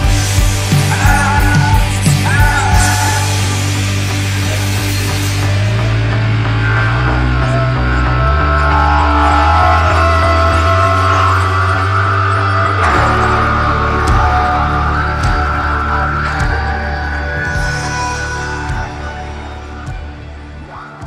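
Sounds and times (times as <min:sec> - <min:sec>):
instrumental rock backing track: 0:00.0 - 0:21.0.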